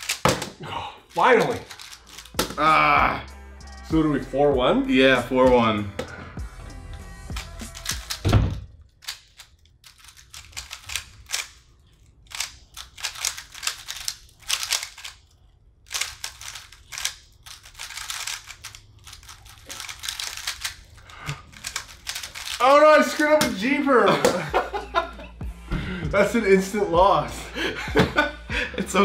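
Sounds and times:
plastic puzzle cube clatter: 0:00.0 - 0:02.5, 0:08.9 - 0:15.3, 0:15.9 - 0:22.6.

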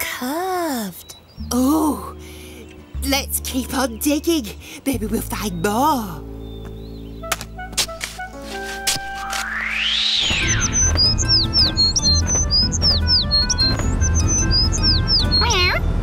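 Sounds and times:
background music: 0:00.0 - 0:16.0
swoosh: 0:09.2 - 0:11.4
cartoon bird chirping: 0:09.5 - 0:15.8
van engine hum: 0:10.8 - 0:16.0.

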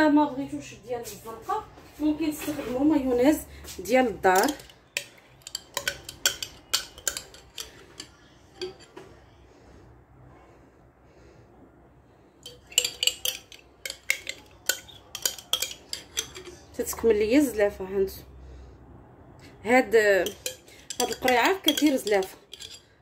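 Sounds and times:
metal spoon scraping glass jar: 0:04.3 - 0:09.0, 0:12.4 - 0:17.5, 0:20.2 - 0:23.0.

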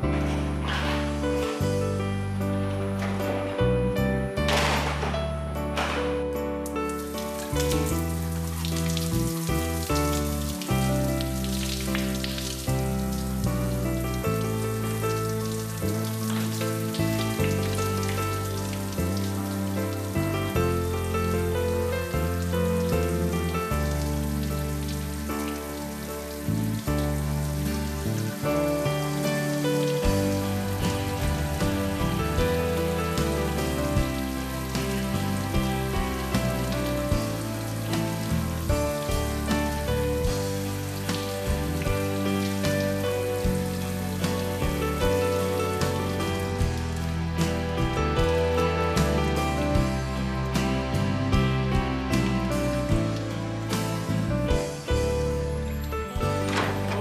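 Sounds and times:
background music with bass line: 0:00.0 - 0:57.0
shower water spraying: 0:00.0 - 0:57.0.

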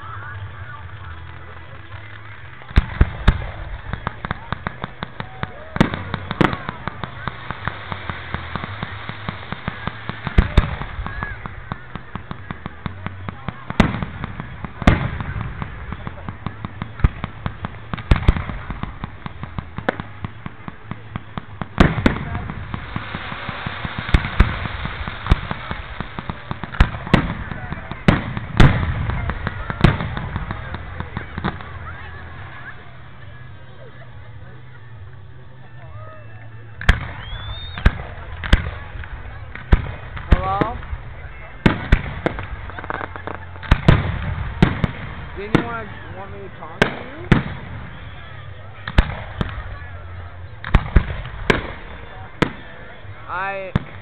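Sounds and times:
rapid crackling pops: 0:00.0 - 0:32.7, 0:36.7 - 0:54.0
fireworks bangs: 0:00.0 - 0:54.0.

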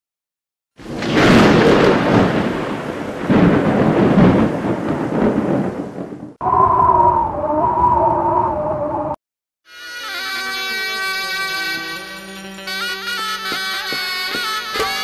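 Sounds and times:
thunder rolls: 0:00.8 - 0:09.2.

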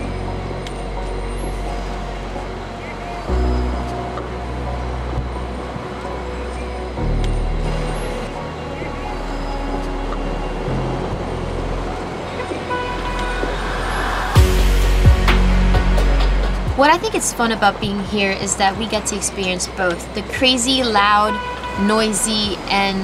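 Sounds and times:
background music with bass notes: 0:00.0 - 0:23.0
city traffic noise: 0:00.0 - 0:23.0.

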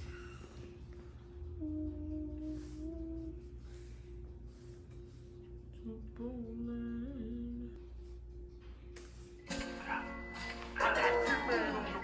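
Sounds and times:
steady low hum: 0:00.0 - 0:12.0
person humming: 0:01.5 - 0:03.9, 0:05.8 - 0:07.8.

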